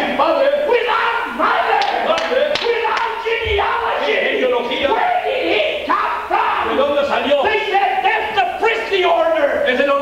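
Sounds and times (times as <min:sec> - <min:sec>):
man speaking over microphone: 0:06.2 - 0:10.0.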